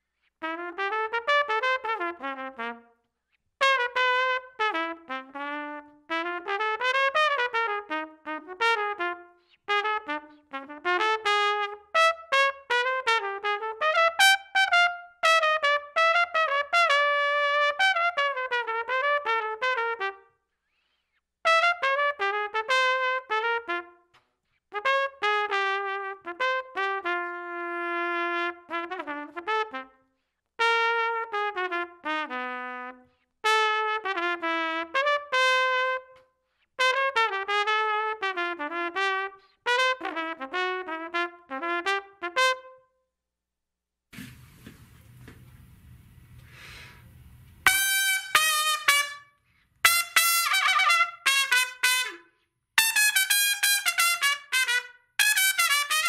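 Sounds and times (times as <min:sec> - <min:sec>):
solo jazz trumpet: 0:00.4 - 0:03.0, 0:03.6 - 0:20.4, 0:21.4 - 0:24.1, 0:24.7 - 0:30.0, 0:30.6 - 0:42.9, 0:44.2 - 0:56.0.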